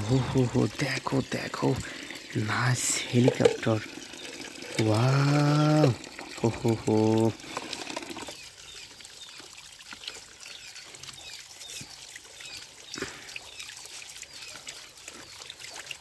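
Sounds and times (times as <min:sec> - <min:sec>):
water splashing on plastic: 0:00.0 - 0:08.4
water pouring from a pipe: 0:00.0 - 0:16.0.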